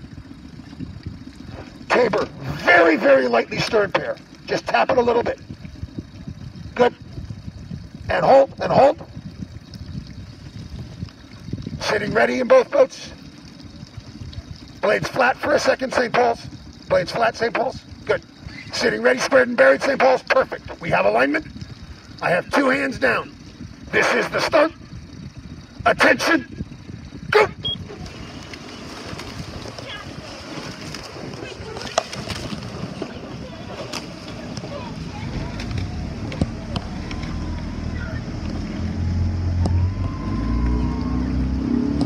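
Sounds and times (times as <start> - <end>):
low rumble: 0.0 - 11.8, 26.5 - 42.0
water lapping and trickling: 0.0 - 42.0
starter saying attention: 14.8 - 21.5, 23.9 - 24.8, 25.8 - 26.6, 27.3 - 27.8
person shouting start command: 27.3 - 27.6.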